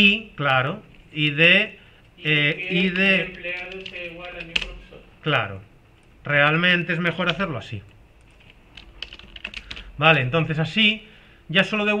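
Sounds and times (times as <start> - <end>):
computer keyboard typing: 2.7 - 5.0, 8.2 - 10.0.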